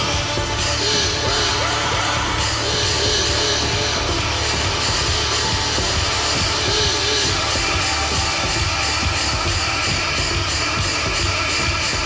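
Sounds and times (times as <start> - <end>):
electronic drums: 0.0 - 12.0
steady low bass: 0.0 - 12.0.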